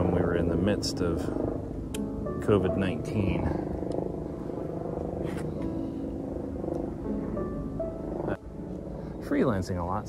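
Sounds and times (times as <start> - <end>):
background music with held notes: 0.0 - 4.4, 5.5 - 10.0.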